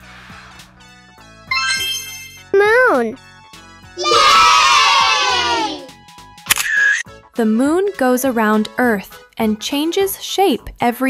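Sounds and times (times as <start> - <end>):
children cheering: 4.0 - 5.9.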